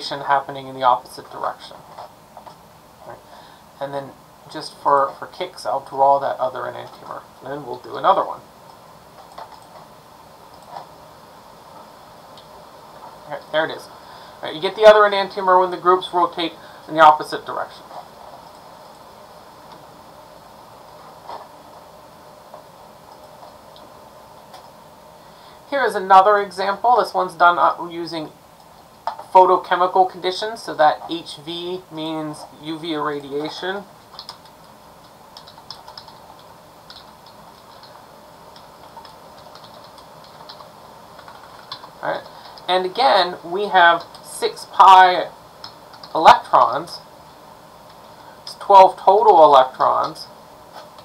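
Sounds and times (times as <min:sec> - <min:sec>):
room background hiss: 0:00.0 - 0:51.0
keyboard typing: 0:09.2 - 0:09.9, 0:33.4 - 0:43.0, 0:43.8 - 0:44.3, 0:45.6 - 0:46.2.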